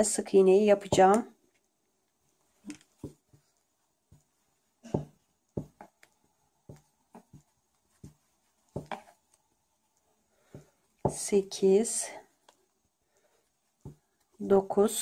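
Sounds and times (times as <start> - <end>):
crochet hook scratching yarn: 1.0 - 15.0.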